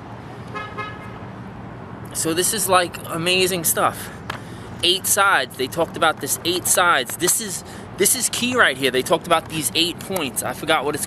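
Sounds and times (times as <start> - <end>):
traffic rumble: 0.0 - 11.0
car horn: 0.5 - 1.2.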